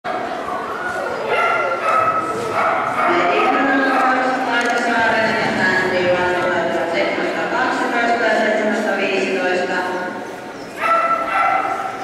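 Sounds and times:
people talking: 0:00.1 - 0:10.3
dogs yipping and whining: 0:10.5 - 0:12.0.

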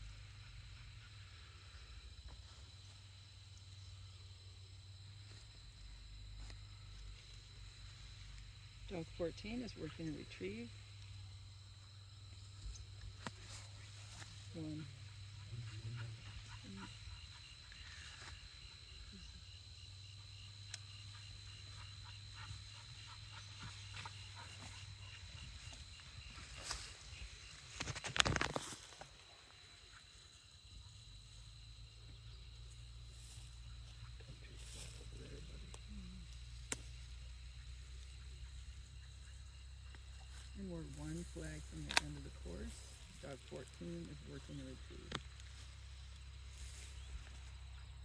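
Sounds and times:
high insect chirping: 0:00.0 - 0:48.0
rustle of brush: 0:12.4 - 0:14.7, 0:22.5 - 0:29.6, 0:33.1 - 0:37.2, 0:39.9 - 0:47.6
rustling through tall grass: 0:22.4 - 0:29.6, 0:33.1 - 0:35.8, 0:40.2 - 0:47.7.

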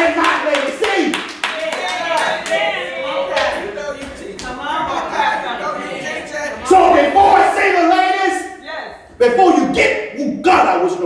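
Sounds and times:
congregation clapping: 0:00.0 - 0:04.6.

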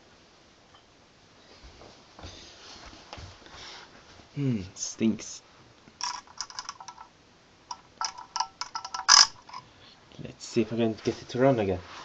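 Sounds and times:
metal rod clicking and scraping: 0:06.0 - 0:07.1, 0:07.7 - 0:09.7.

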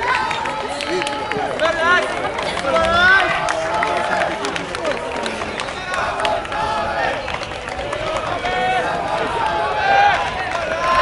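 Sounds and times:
distant voices shouting: 0:00.0 - 0:11.0.

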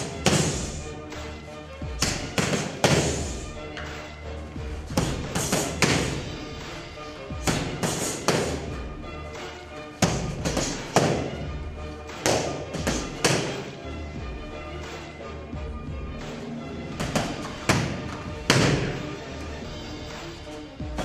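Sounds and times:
background music: 0:00.0 - 0:21.0
strikes on padded mitts: 0:02.0 - 0:03.4, 0:04.9 - 0:06.2, 0:07.4 - 0:08.7, 0:10.0 - 0:11.4, 0:12.1 - 0:13.7, 0:17.0 - 0:19.0.

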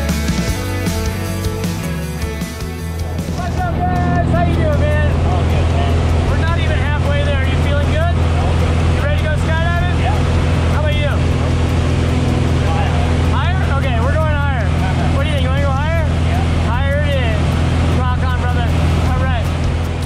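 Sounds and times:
aircraft engine and propeller droning: 0:00.0 - 0:20.0
voices calling out: 0:02.1 - 0:19.9.

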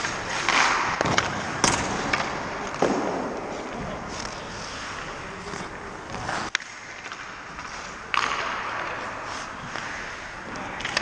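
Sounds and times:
skate blades scraping on ice: 0:00.0 - 0:11.0.

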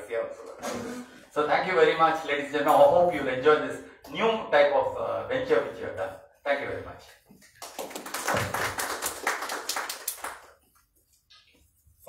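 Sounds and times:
audience clapping: 0:07.5 - 0:10.8.

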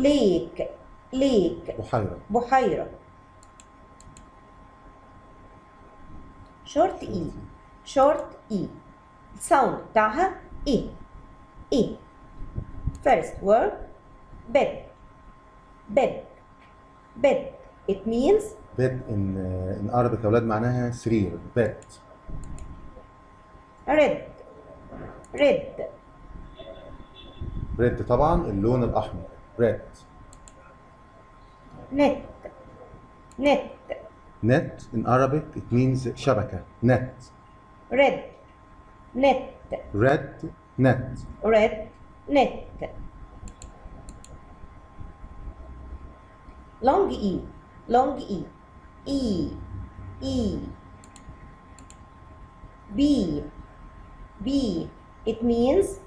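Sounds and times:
faint steady hum: 0:00.0 - 0:56.0
computer mouse clicks: 0:03.4 - 0:04.3, 0:21.8 - 0:22.7, 0:30.3 - 0:30.6, 0:43.4 - 0:44.4, 0:51.0 - 0:52.1.

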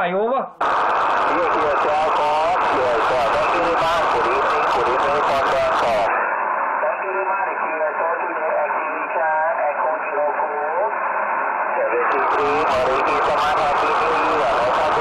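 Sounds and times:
man's voice over radio speaker: 0:00.0 - 0:11.1, 0:11.7 - 0:15.0
man talking close to microphone: 0:01.3 - 0:06.1, 0:11.9 - 0:15.0.

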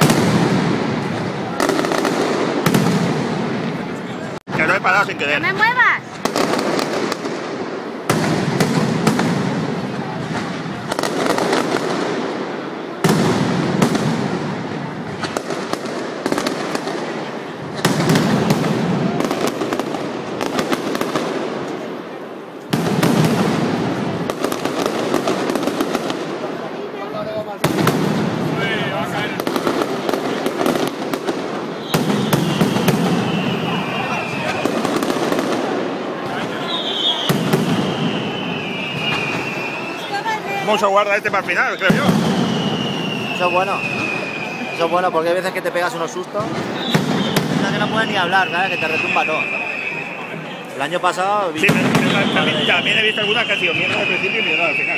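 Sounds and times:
firecrackers barrage: 0:00.0 - 0:54.9
high falling whistle: 0:31.8 - 0:34.8, 0:36.4 - 0:40.2, 0:41.5 - 0:45.3, 0:46.7 - 0:50.6, 0:52.0 - 0:54.9.

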